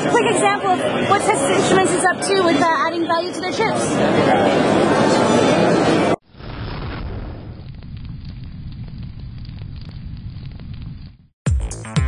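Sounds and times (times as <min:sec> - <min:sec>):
fire crackling and popping: 0:06.3 - 0:11.4.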